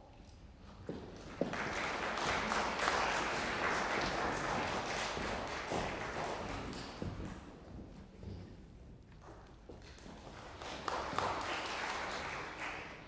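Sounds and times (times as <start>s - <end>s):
audience applauding: 1.3s - 7.2s, 10.2s - 13.0s.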